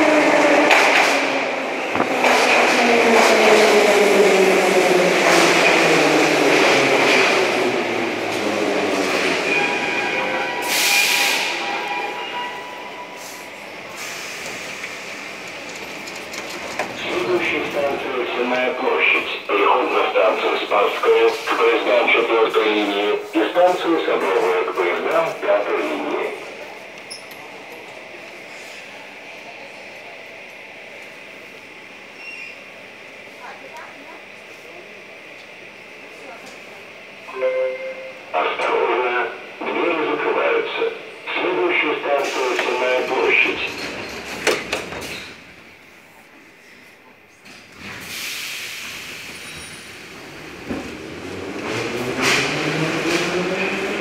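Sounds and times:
train doors closing knocks: 1.9s - 2.6s, 43.8s - 45.4s
announcement over loudspeakers: 16.9s - 26.8s, 37.2s - 43.9s
public-address tone: 37.3s - 42.4s.

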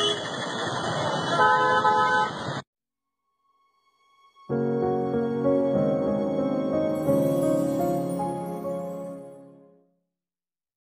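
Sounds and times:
vehicle horn honking: 0.0s - 0.2s, 1.4s - 2.4s
busy street noise: 0.0s - 2.6s.

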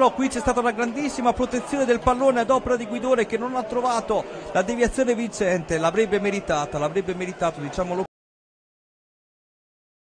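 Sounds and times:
man speaking: 0.0s - 8.1s.

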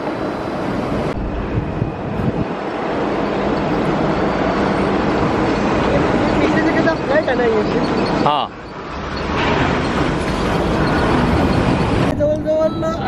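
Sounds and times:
heavy machinery rumble: 0.7s - 13.0s.

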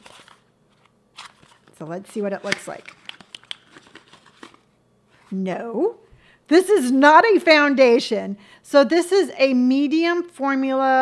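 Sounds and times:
packaging crinkling: 0.0s - 4.7s.

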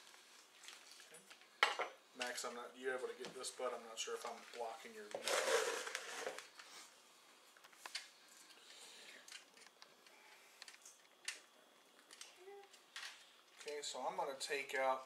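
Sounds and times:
plastic wrap crackling: 0.0s - 1.5s.

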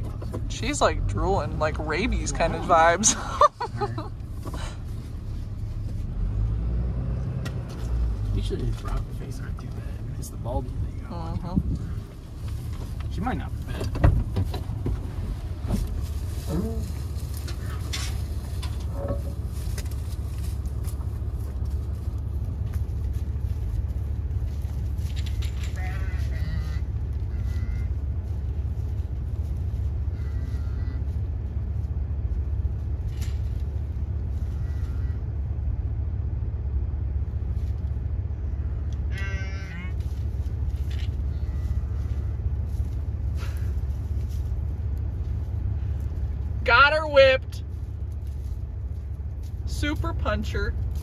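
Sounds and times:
truck engine idling: 0.0s - 51.0s.

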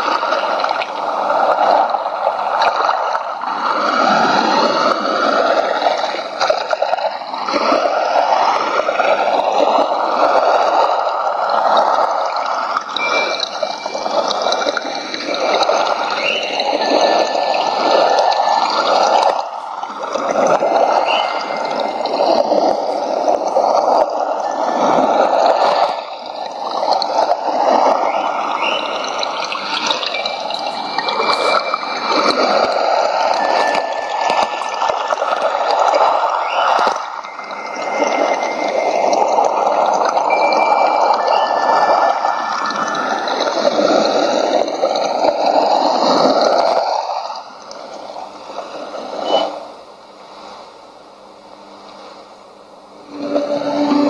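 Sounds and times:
rushing water: 0.0s - 54.0s
shortwave radio fading: 8.0s - 43.8s, 47.2s - 54.0s.

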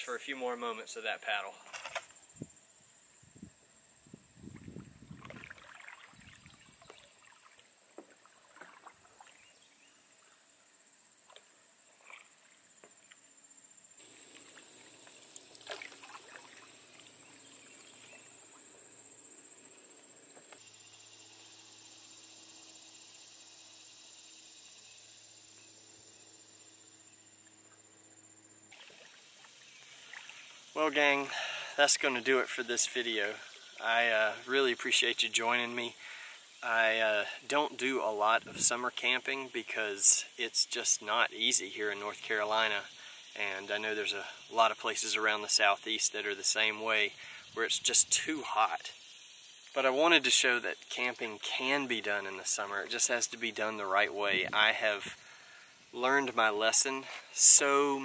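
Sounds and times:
paddle swishing in water: 4.6s - 9.6s, 14.0s - 18.7s, 28.7s - 30.6s.

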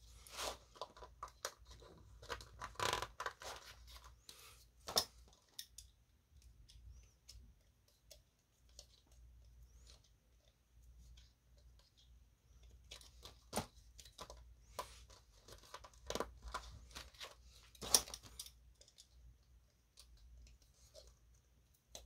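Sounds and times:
coin holders being handled: 0.0s - 22.0s.

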